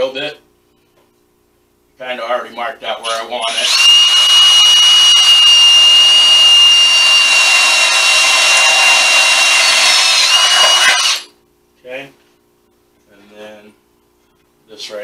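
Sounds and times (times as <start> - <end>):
power drill drilling into steel: 3.1 - 11.3.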